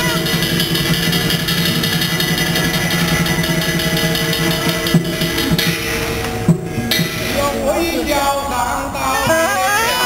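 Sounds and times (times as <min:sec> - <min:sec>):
pulsing shimmering percussion: 0:00.0 - 0:09.1
steady held tones: 0:00.0 - 0:10.0
wavering high melody: 0:00.0 - 0:10.0.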